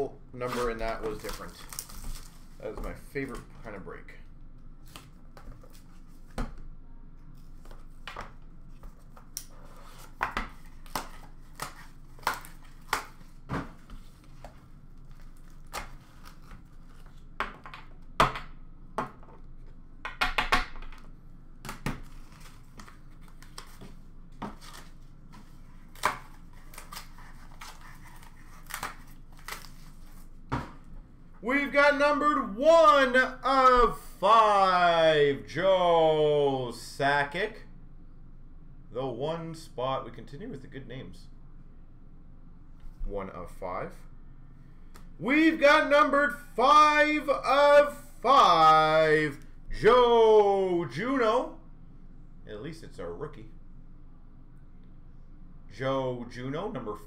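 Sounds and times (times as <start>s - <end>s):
wrapper crinkling: 0.6s - 2.6s.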